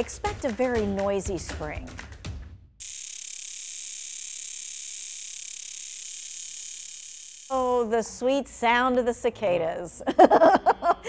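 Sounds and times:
cicadas buzzing: 0:02.8 - 0:07.7.

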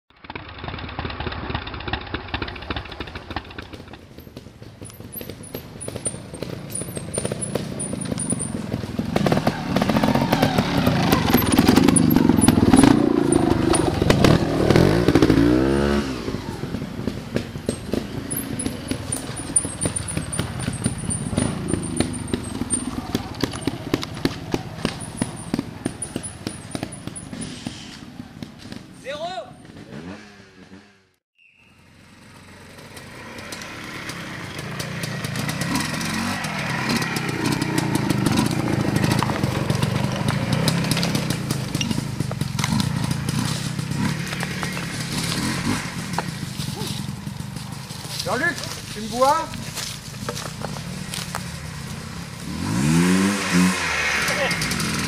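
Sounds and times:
motorcycle engines revving: 0:00.2 - 0:55.0.

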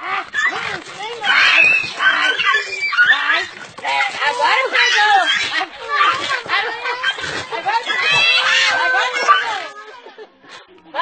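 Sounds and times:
people's voices: 0:00.0 - 0:11.0
dog yelping and whining: 0:00.4 - 0:03.5, 0:04.7 - 0:06.4.

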